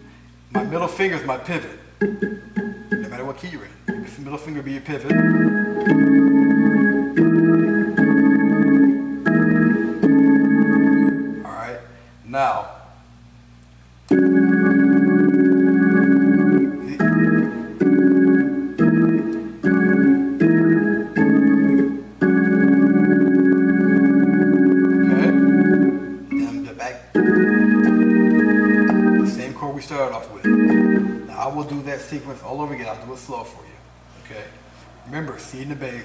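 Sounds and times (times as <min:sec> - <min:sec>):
organ playing gospel chords: 0:00.0 - 0:11.6, 0:14.0 - 0:33.2.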